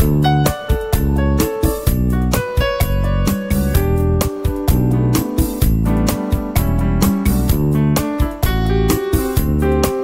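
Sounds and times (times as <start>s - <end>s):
instrumental pop backing track: 0.0s - 10.0s.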